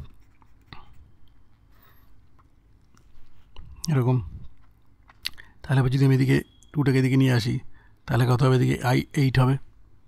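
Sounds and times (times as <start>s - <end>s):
man speaking: 5.6s - 9.6s.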